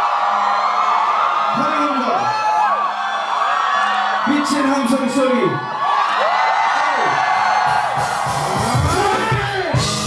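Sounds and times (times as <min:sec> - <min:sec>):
crowd cheering and whooping: 0:00.0 - 0:10.0
live hip-hop music: 0:07.3 - 0:10.0.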